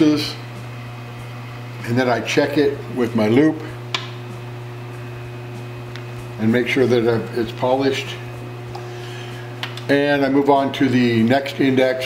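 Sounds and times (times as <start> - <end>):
machine motor humming and whining: 0.0 - 12.0.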